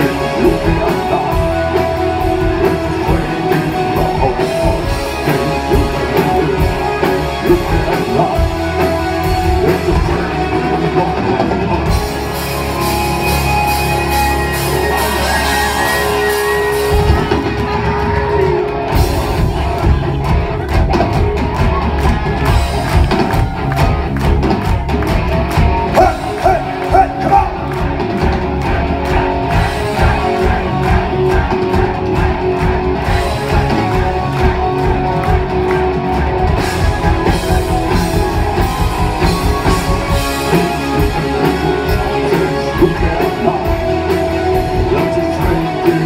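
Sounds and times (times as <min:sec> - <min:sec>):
rock band playing live: 0:00.0 - 0:46.0.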